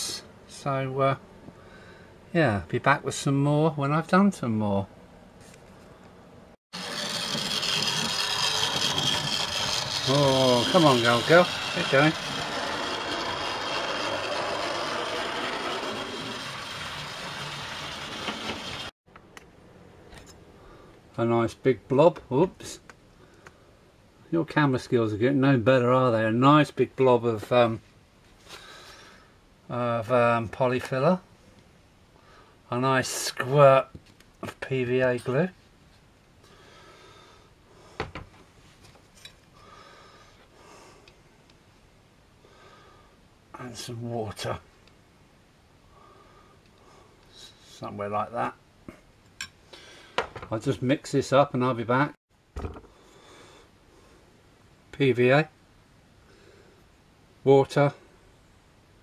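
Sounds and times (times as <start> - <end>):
model train motor whirring: 6.8 - 18.9
soft breath-like noises: 39.5 - 41.4, 45.8 - 47.8.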